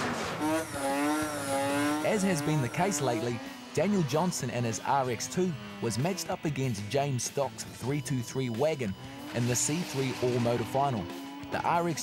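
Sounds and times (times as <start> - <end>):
race car engine at high revs: 0.0 - 12.0.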